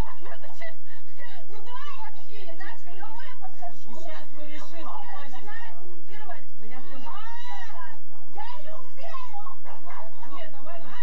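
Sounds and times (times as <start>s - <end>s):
excited talk and shouts: 1.2s - 11.0s.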